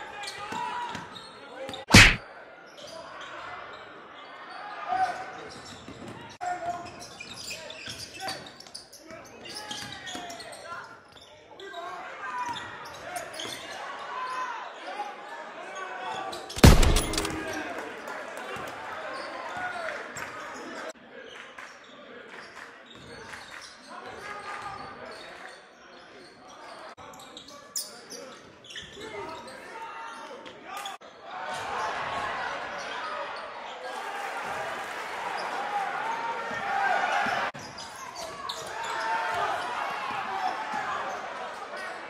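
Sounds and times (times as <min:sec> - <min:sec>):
spectators' voices and shouts: 0:01.7 - 0:02.6, 0:13.1 - 0:20.9, 0:29.1 - 0:42.0.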